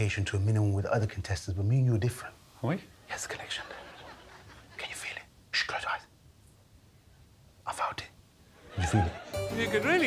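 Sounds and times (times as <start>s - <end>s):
man whispering: 2.1s - 3.8s, 4.8s - 6.2s, 7.6s - 8.2s.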